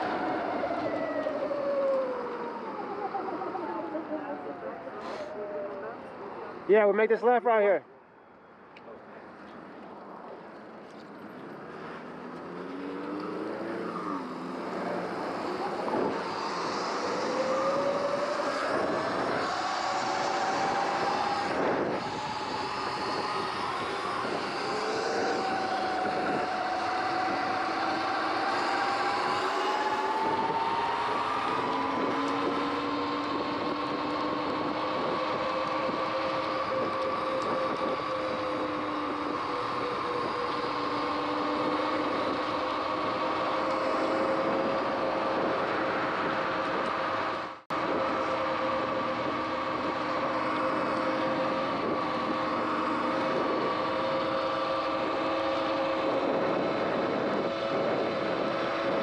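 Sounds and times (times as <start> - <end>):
road noise: 0.0 - 59.0
electric bike motor whining: 12.4 - 47.2, 47.8 - 59.0
wind noise: 12.8 - 59.0.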